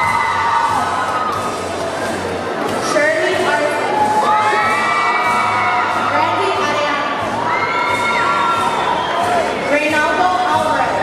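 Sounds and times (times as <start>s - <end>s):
large crowd cheering and shouting: 0.0s - 11.0s.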